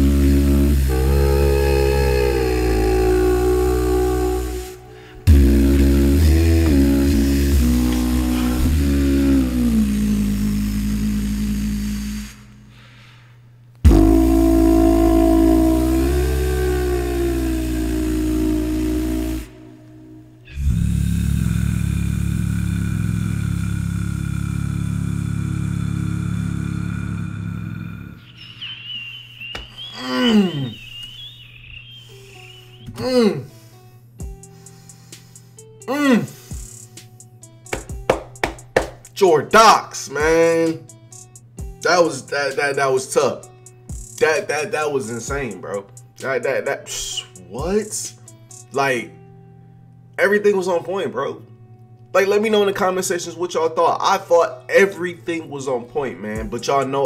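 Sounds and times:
deep sustained bass: 0:00.0 - 0:11.9, 0:13.9 - 0:28.1
beatbox vocal chords: 0:00.0 - 0:12.5, 0:13.8 - 0:19.8, 0:34.2 - 0:48.8, 0:56.4 - 0:57.0.

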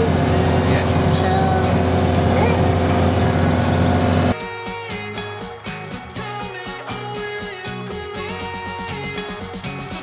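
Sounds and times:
road noise: 0:00.0 - 0:04.3
vehicle engine drone: 0:00.0 - 0:04.4
music with beat and plucked guitar: 0:03.7 - 0:10.0.

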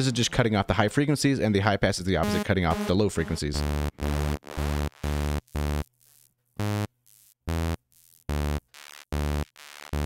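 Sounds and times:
thin synth echoes: 0:02.2 - 0:04.1
sawtooth synth notes: 0:02.2 - 0:05.9.

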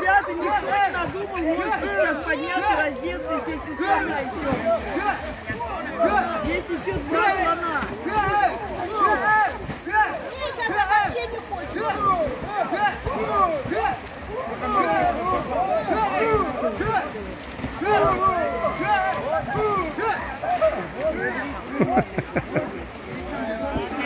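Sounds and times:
people talking and calling out: 0:00.0 - 0:24.0
water splashing: 0:00.0 - 0:24.0.

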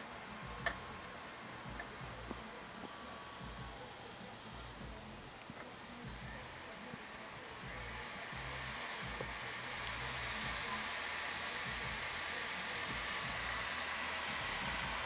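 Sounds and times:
laptop whirring: 0:00.0 - 0:15.0.

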